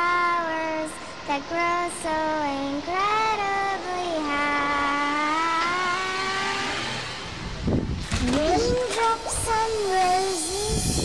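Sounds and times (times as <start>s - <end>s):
child singing a long note: 0.0s - 6.9s, 8.2s - 11.0s.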